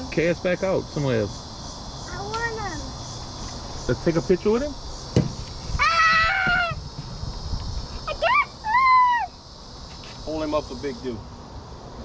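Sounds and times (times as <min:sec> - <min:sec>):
child squealing: 0:05.8 - 0:06.8, 0:08.0 - 0:09.4.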